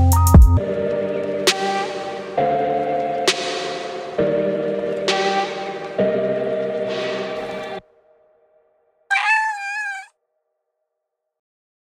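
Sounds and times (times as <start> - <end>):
cat meowing: 9.1 - 10.1.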